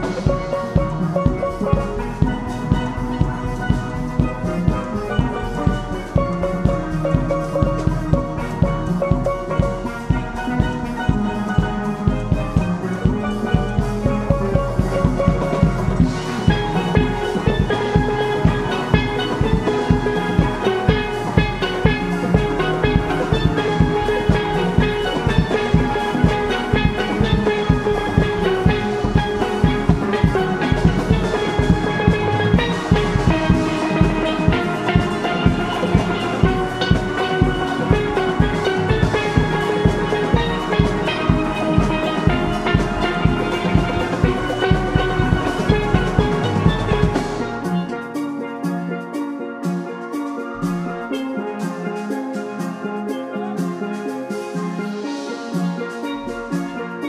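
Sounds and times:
drum kit beat: 0.0s - 57.0s
steel pans playing melody: 0.0s - 57.0s.

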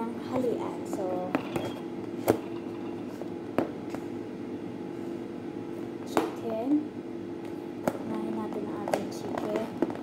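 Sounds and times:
kitchen appliance hum: 0.0s - 10.0s.

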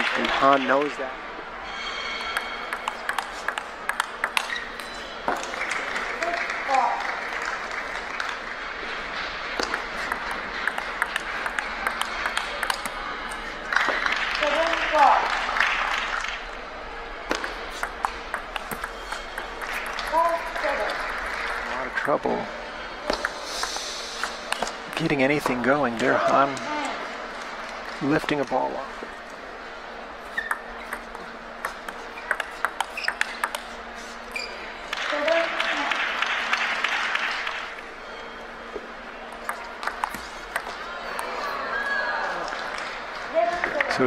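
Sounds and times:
table tennis ball clicking: 2.4s - 5.4s, 9.6s - 13.0s, 17.3s - 21.6s, 30.4s - 33.8s, 39.4s - 41.3s
applause: 5.4s - 9.0s, 13.7s - 16.4s, 19.6s - 22.0s, 34.9s - 37.7s.

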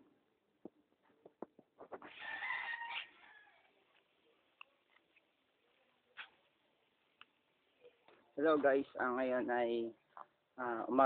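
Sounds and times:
rooster crowing: 2.2s - 3.7s.

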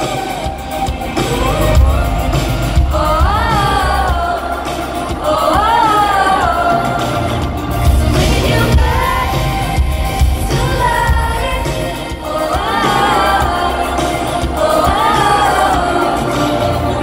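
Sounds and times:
live pop band: 0.0s - 17.0s
woman singing amplified: 0.0s - 17.0s.

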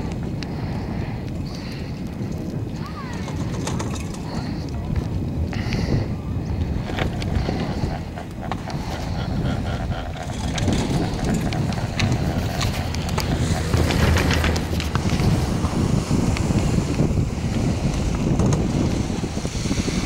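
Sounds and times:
steady low rumble: 0.0s - 20.0s
wind buffeting microphone: 0.0s - 20.0s
light clicks and rattles: 3.1s - 4.8s.

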